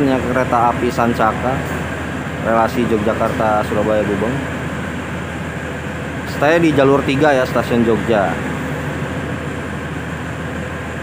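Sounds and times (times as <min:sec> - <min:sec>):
idling train mechanical hum: 0:00.0 - 0:11.0.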